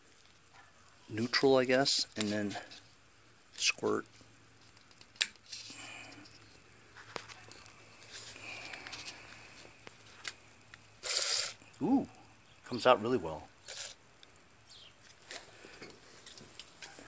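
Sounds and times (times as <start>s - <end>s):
aerosol spray hiss: 11.0s - 11.6s, 13.7s - 14.0s.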